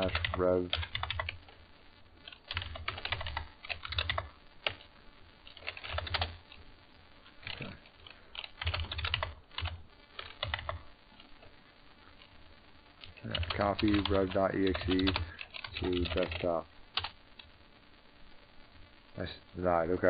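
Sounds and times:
computer keyboard typing: 0.0s - 1.6s, 2.2s - 6.6s, 7.4s - 11.3s, 13.0s - 17.5s.

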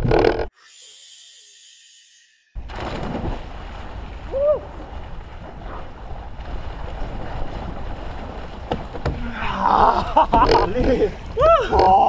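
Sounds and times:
swimmers splashing into water: 2.6s - 12.0s
water churning: 2.6s - 12.0s
grunting shouts: 9.2s - 10.1s, 11.4s - 12.0s.

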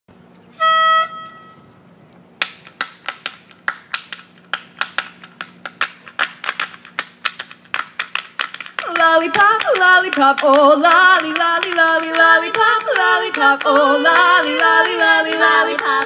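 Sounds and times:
pitch pipe note: 0.5s - 1.7s.

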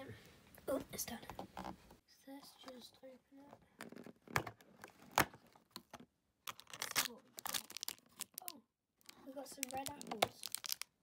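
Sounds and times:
plastic bag crinkling: 6.4s - 11.0s
cardboard tearing open: 6.5s - 8.4s.

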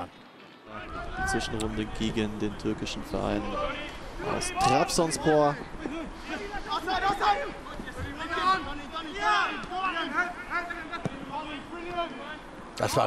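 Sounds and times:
players calling out: 0.7s - 13.0s.

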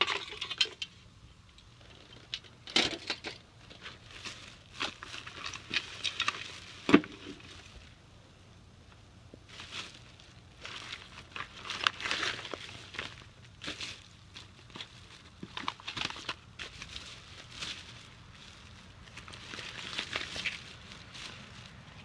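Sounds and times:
plastic bags crinkling: 1.9s - 8.0s, 9.4s - 22.0s.

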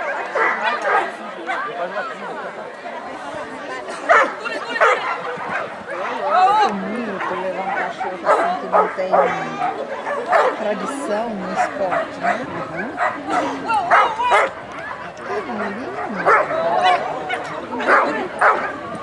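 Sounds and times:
dog barking: 0.0s - 1.7s, 4.1s - 6.2s, 7.2s - 10.6s, 11.5s - 14.6s, 15.2s - 18.8s
crowd chatter: 0.0s - 19.0s.

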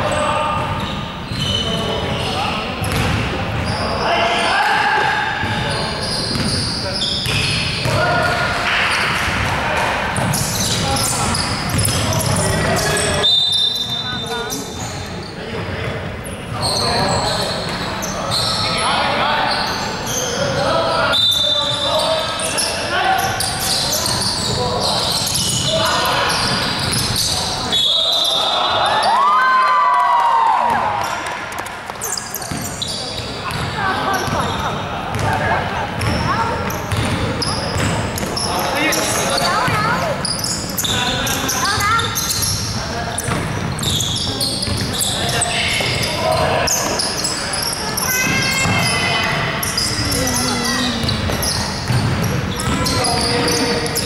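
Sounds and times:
sneakers squeaking: 0.0s - 29.8s, 30.4s - 54.0s
basketball bouncing: 2.8s - 3.7s, 6.3s - 6.6s, 7.2s - 8.3s, 11.6s - 12.7s, 33.5s - 35.4s, 36.0s - 38.4s, 43.2s - 43.9s, 50.9s - 53.2s
referee whistle blasts: 27.7s - 28.8s.

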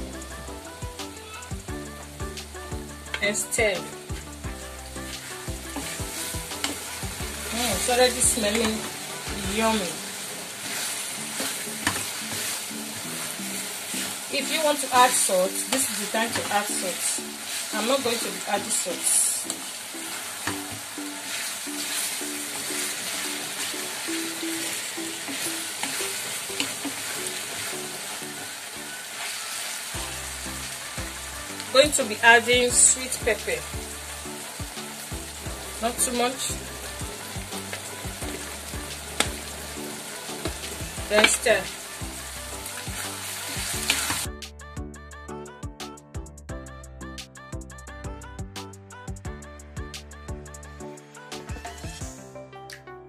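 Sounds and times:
background music: 0.0s - 53.0s
vegetables sizzling in oil: 0.4s - 44.3s
spoon stirring in pan: 5.1s - 30.0s.

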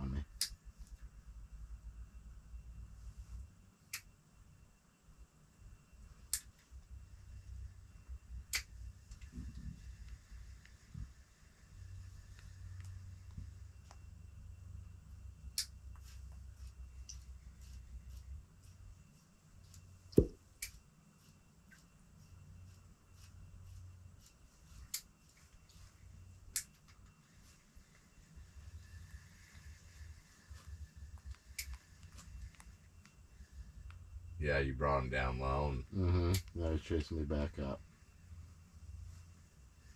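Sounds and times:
faint low rumble: 0.0s - 20.6s, 21.4s - 39.9s
small clicks and ticks: 24.2s - 25.8s, 26.5s - 28.0s, 31.1s - 33.2s.

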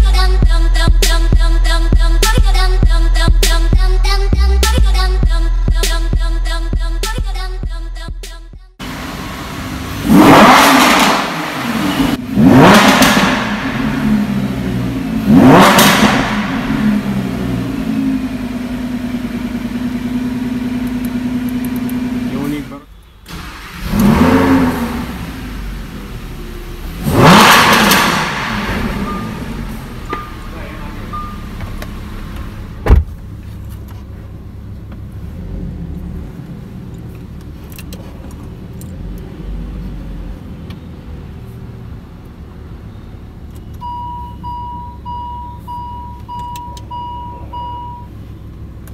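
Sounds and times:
car engine revving and idling: 7.7s - 48.9s.

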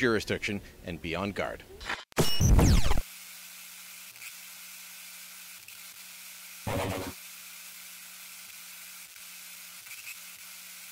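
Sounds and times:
transition sound effect burst: 6.7s - 7.2s.

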